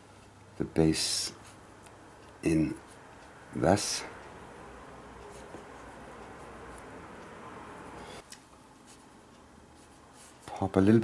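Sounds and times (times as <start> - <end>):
paintbrush strokes on paper: 5.2 - 7.3, 7.9 - 10.6.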